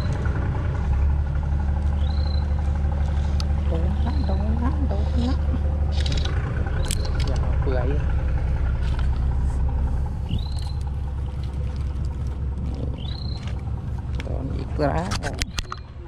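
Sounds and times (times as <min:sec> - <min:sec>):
low engine drone: 0:00.0 - 0:16.0.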